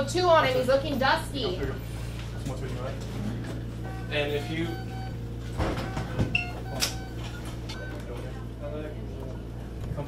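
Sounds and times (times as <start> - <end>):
patient monitor beeps: 0.0 - 1.1, 3.4 - 8.5
steady electrical hum: 0.0 - 10.0.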